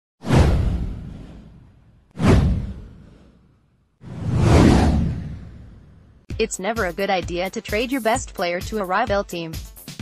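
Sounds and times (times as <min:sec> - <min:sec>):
whoosh: 0:00.2 - 0:06.3
deep low boom: 0:00.3 - 0:03.3, 0:04.1 - 0:06.2.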